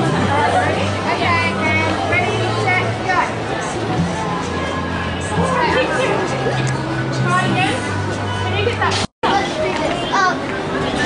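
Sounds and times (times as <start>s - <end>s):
people and children talking: 0.0s - 11.0s.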